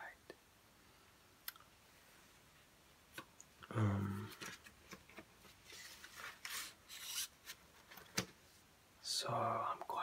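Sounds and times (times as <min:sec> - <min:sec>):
record sleeve rubbing: 0:04.4 - 0:07.6.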